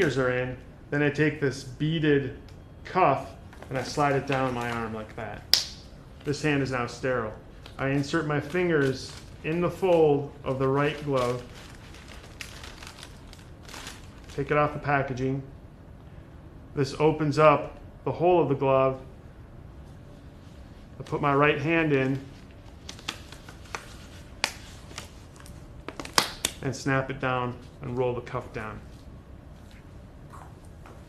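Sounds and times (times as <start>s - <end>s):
paper wrapper crinkling: 3.5s - 5.4s, 6.2s - 14.8s, 21.0s - 26.6s
rubber glove snapping: 5.5s - 5.9s, 22.8s - 26.6s.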